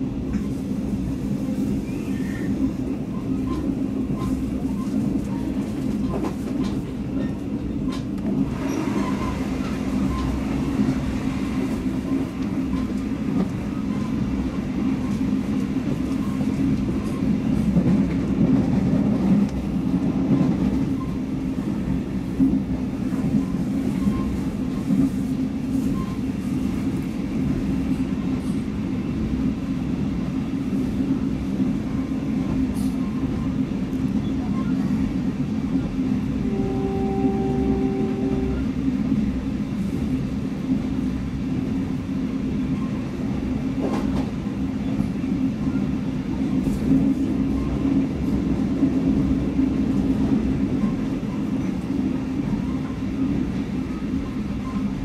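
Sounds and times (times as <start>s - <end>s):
train wheels rumbling on rails: 0.0s - 55.0s.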